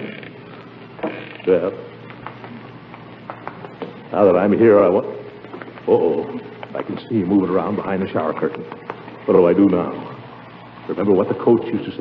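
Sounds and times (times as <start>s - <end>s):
faint recording clicks: 0.2s - 4.2s, 5.3s - 7.1s, 8.3s - 9.3s
shower running: 0.5s - 12.0s.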